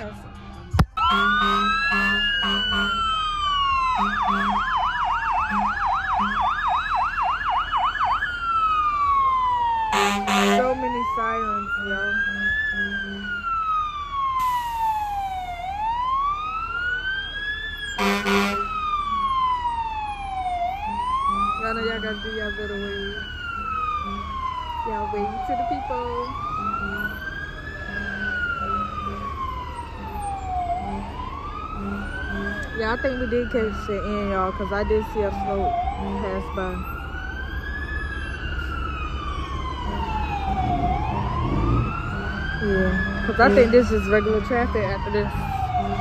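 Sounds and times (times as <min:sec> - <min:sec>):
fire engine siren wailing: 0:00.0 - 0:46.0.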